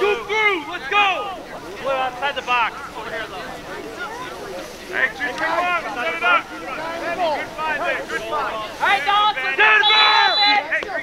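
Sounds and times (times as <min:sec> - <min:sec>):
crowd talking and calling out: 0:00.0 - 0:11.0.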